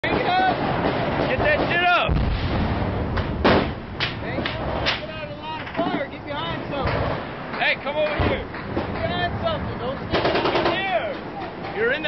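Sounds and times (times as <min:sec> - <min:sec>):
sharp gunshots: 0:00.1 - 0:05.1, 0:10.1 - 0:11.1.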